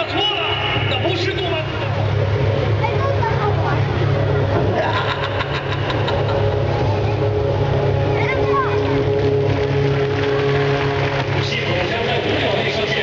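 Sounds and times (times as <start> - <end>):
engine running at low revs: 0.6 - 13.0.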